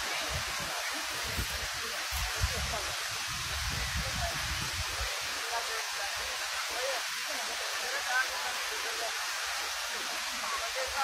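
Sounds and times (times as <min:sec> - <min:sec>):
fountain water jets hissing: 0:00.0 - 0:11.0.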